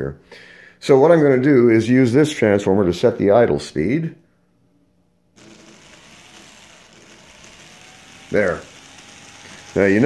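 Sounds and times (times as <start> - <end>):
small electric motor whirring: 5.4 - 10.0.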